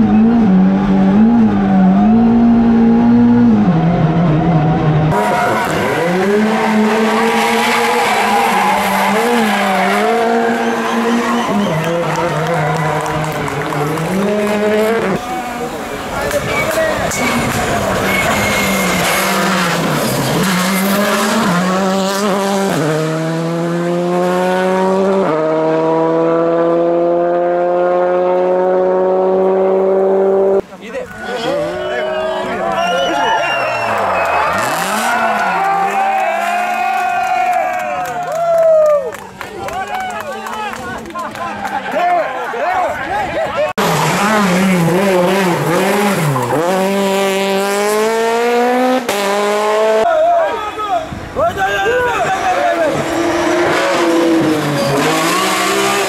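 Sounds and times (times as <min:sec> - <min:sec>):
rally car engine accelerating: 0:00.0 - 0:30.6, 0:33.0 - 0:36.6, 0:43.8 - 0:50.1, 0:52.4 - 0:56.0.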